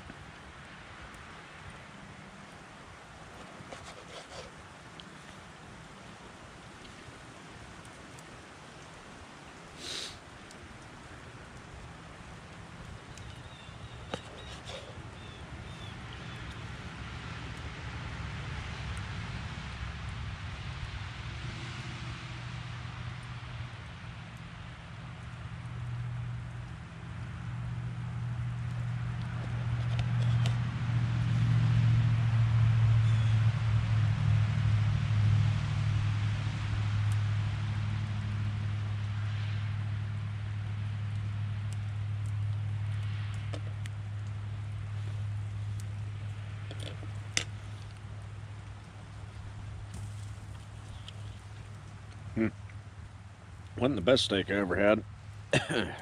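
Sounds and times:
low engine hum: 10.4 - 56.0.

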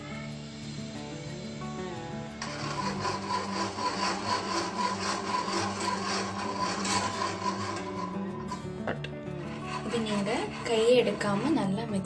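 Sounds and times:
whisk scraping in a pan: 2.4 - 12.0.

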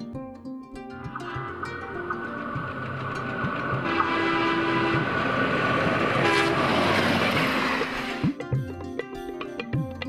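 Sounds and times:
diesel train passing: 0.9 - 8.4
train horn: 3.3 - 8.2.

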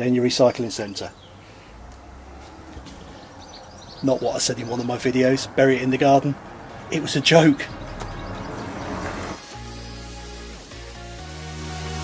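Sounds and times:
distant bird chirps: 0.0 - 10.2.

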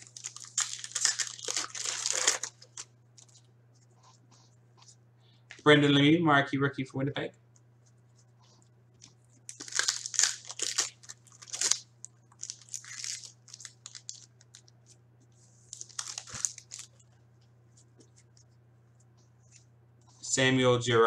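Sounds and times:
foil wrapper tearing and crinkling: 0.0 - 3.3, 9.5 - 14.7, 15.7 - 17.0.

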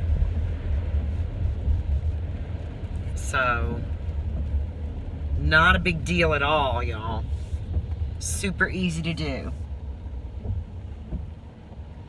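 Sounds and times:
car rumbling from inside cabin: 0.0 - 12.0
road noise hiss: 0.0 - 12.0.

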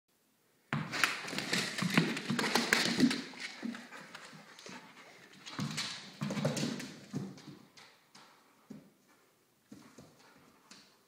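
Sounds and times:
dog claws scrabbling on tile: 0.8 - 8.5.

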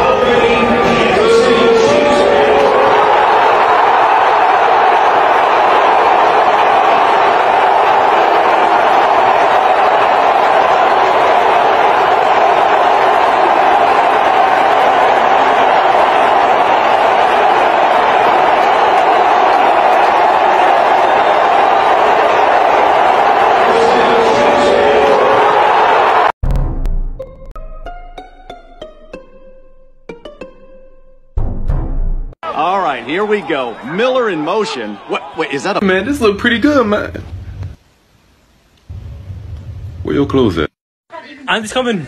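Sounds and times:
loud crowd-like noise: 0.0 - 26.3, 32.4 - 36.4.

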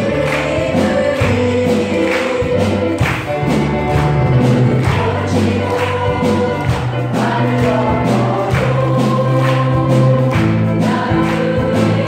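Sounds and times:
women's choir singing gospel: 0.0 - 12.0.

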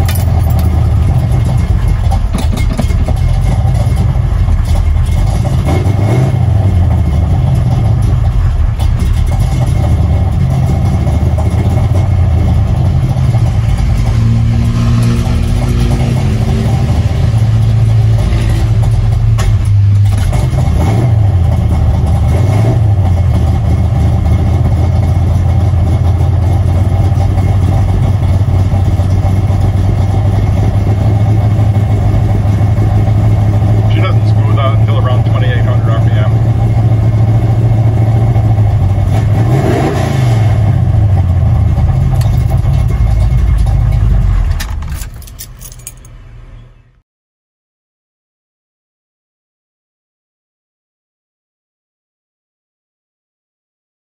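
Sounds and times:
engine running at raised idle: 0.0 - 14.2, 15.0 - 39.6, 40.3 - 45.9.

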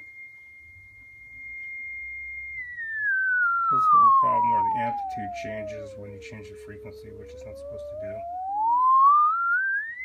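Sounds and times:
sine tone gliding up in pitch: 0.0 - 10.0.

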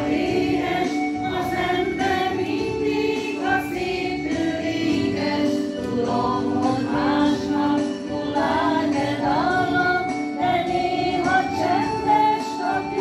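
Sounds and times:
small choir singing: 0.0 - 13.0.

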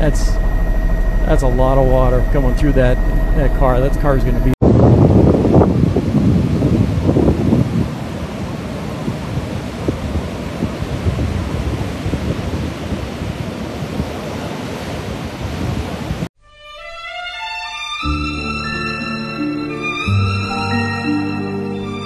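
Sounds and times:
storm surf washing: 0.0 - 16.3
wind buffeting microphone: 0.0 - 16.3.

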